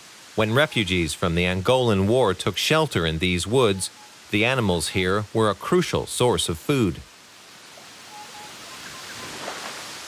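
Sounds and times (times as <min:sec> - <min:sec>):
steady hiss: 0:00.0 - 0:10.0
faint bird chirps: 0:03.6 - 0:04.2, 0:07.8 - 0:09.4.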